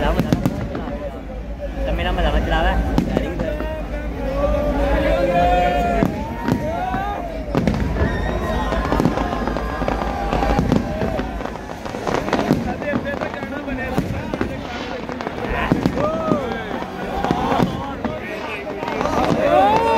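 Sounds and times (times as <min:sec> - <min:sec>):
fireworks bangs and crackles: 0:00.0 - 0:19.9
people's voices: 0:00.0 - 0:19.9.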